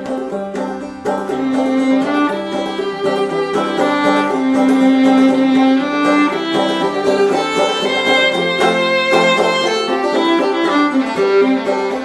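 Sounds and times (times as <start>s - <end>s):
fiddle playing folk tune: 0.0s - 12.0s.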